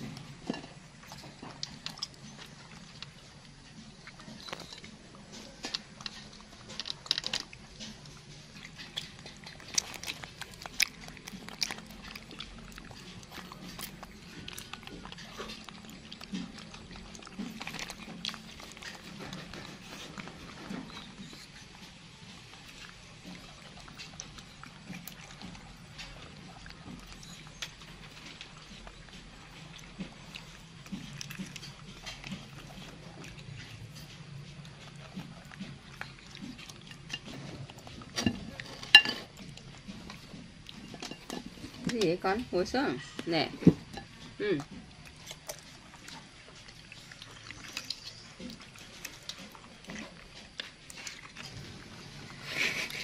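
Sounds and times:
low steady hum: 0.0 - 53.0
monkeys chewing: 0.0 - 53.0.

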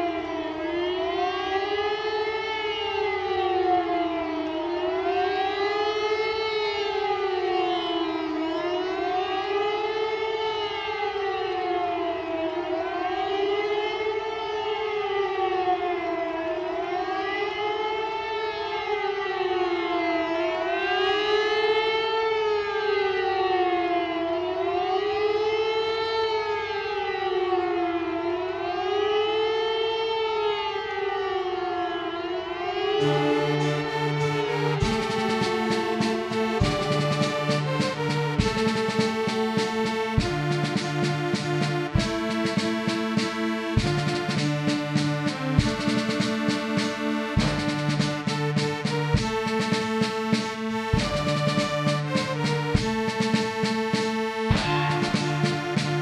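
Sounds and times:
air-raid siren wailing: 0.0 - 56.0.

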